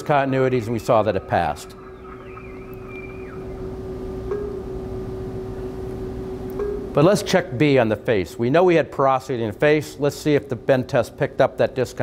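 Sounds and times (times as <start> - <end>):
faint wavering whistle-like tone: 0.0 - 5.6
steady hum: 0.0 - 10.7.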